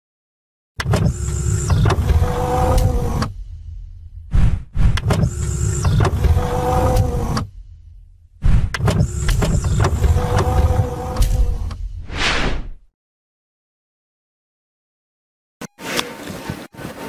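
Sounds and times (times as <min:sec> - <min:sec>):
mechanical sweep sound effect: 0:01.1 - 0:12.8.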